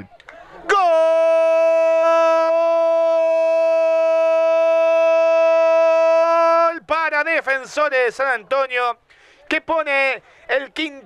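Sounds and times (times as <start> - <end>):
commentator shouting goal cry: 0.6 - 8.4.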